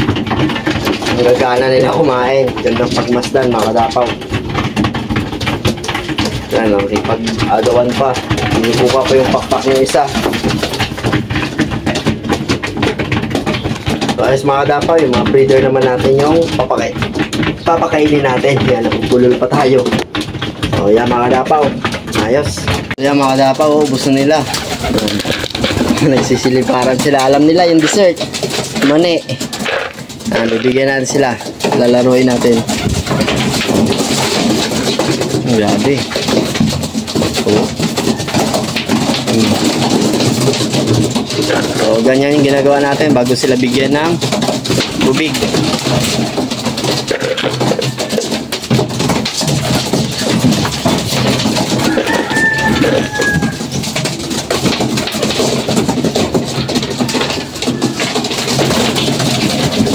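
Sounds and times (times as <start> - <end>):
pigeons pecking grain from trough: 0.0 - 59.9
wings flapping: 0.0 - 59.9.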